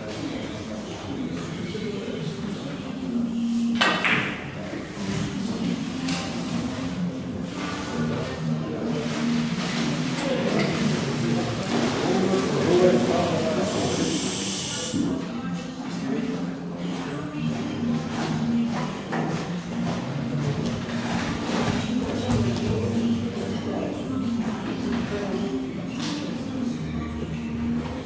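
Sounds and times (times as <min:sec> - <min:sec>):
billiard cue striking balls: 0:03.8 - 0:04.6.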